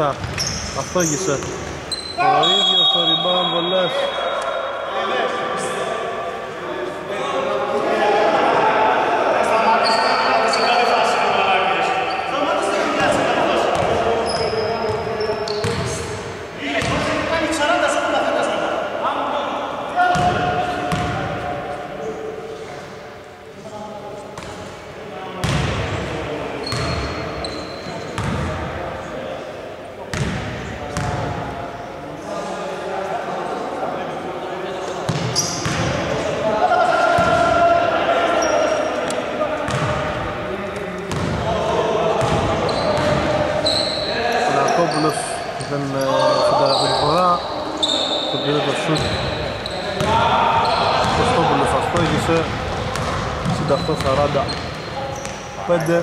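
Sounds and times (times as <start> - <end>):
sneaker squeaks: 0.0 - 5.0, 9.7 - 11.1, 12.0 - 12.4, 13.0 - 16.2, 26.6 - 28.5, 35.1 - 36.0, 38.3 - 39.0, 39.7 - 40.0, 42.2 - 56.0.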